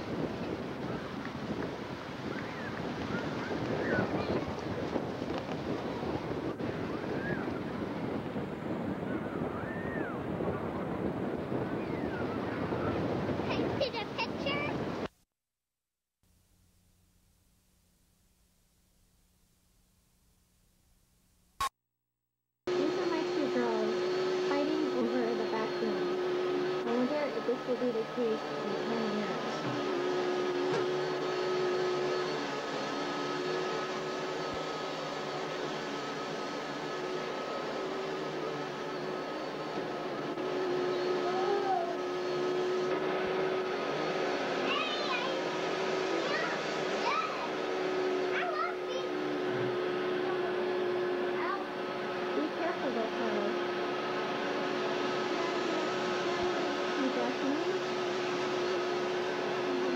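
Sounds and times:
vacuum cleaner running: 0:00.0 - 0:15.1, 0:22.7 - 0:59.9
small children's voices: 0:02.3 - 0:05.0, 0:11.9 - 0:14.8, 0:41.1 - 0:42.1, 0:44.6 - 0:50.6, 0:51.2 - 0:51.8, 0:55.2 - 0:57.8.

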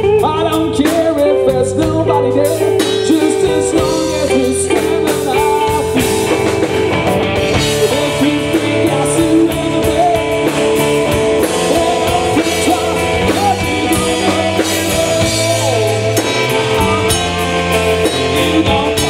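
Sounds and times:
bending electric guitar notes: 0:00.0 - 0:19.0
blues-rock band playing: 0:00.0 - 0:19.0.

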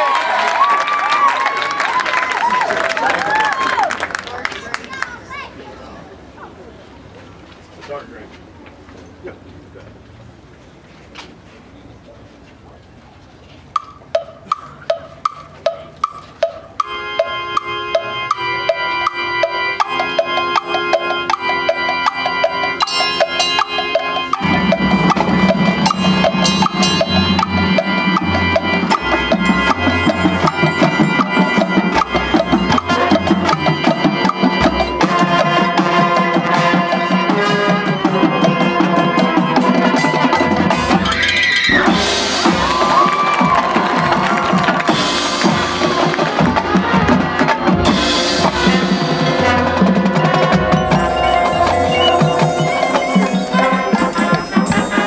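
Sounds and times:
marching band playing: 0:13.8 - 0:55.0
struck percussion note: 0:50.2 - 0:55.0.

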